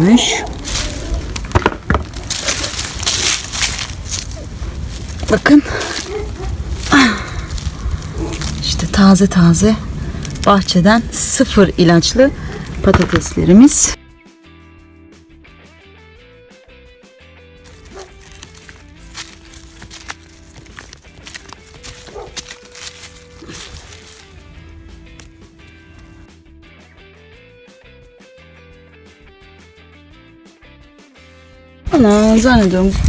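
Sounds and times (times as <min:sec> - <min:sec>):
hands digging in loose soil: 0:00.0 - 0:01.4, 0:02.0 - 0:09.0, 0:17.6 - 0:26.2
slow melodic background music: 0:14.0 - 0:32.4.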